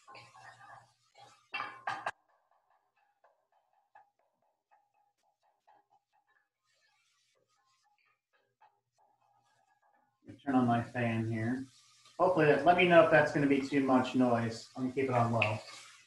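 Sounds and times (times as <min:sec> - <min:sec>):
sausage sizzling in a pan: 0:00.0 - 0:08.0, 0:10.4 - 0:16.0.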